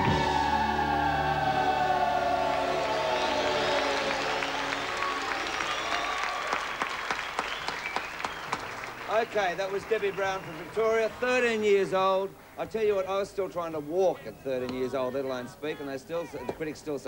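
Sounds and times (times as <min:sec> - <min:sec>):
audience applauding: 0:00.0 - 0:12.2.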